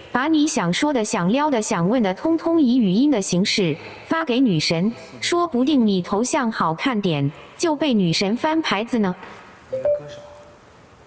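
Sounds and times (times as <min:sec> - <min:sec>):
short electronic beep: 0:09.7 - 0:10.5.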